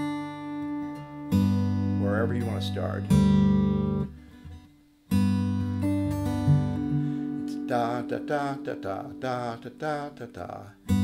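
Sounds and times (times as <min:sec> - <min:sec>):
acoustic guitar plucked chord: 0:00.0 - 0:11.0.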